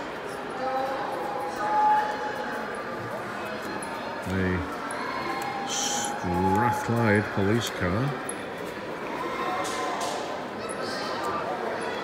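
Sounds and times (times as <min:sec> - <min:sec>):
indoor hall room noise: 0:00.0 - 0:12.0
murmur of distant voices: 0:00.0 - 0:12.0.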